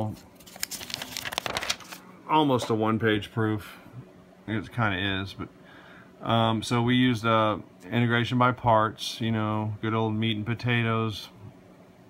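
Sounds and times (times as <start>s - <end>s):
paper page turning: 0.0s - 2.0s.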